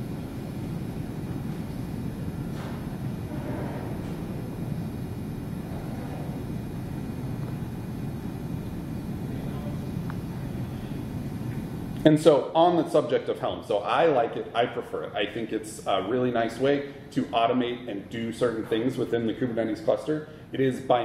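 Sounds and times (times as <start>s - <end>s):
low room rumble: 0.0s - 21.0s.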